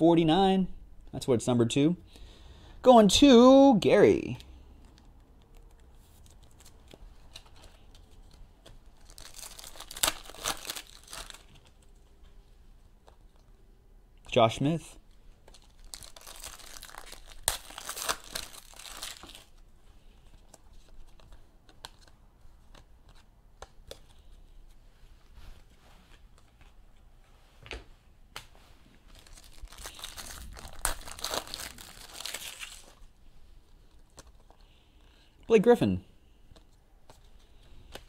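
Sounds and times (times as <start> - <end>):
foil wrappers crinkling and tearing: 8.8 - 11.8, 15.5 - 19.6, 29.1 - 33.1.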